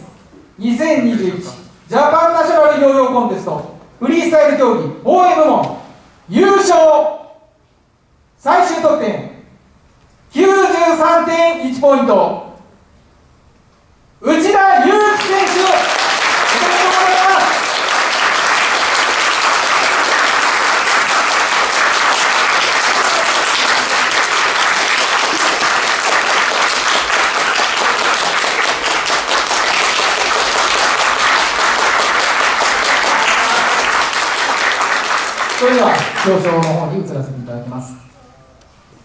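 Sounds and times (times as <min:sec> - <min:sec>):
audience applauding: 0:15.1 - 0:36.9.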